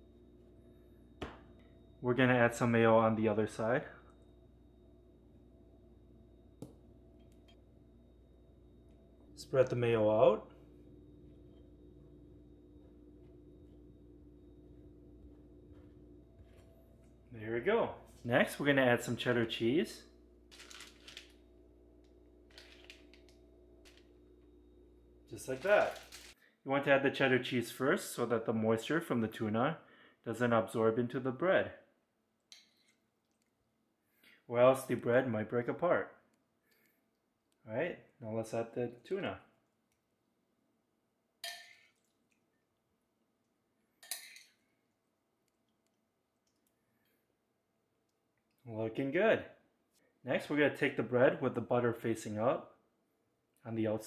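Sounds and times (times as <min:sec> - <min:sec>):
faint room hum: 0:00.0 - 0:54.0
plastic package rustling: 0:20.5 - 0:21.4, 0:22.5 - 0:24.1, 0:25.4 - 0:26.4.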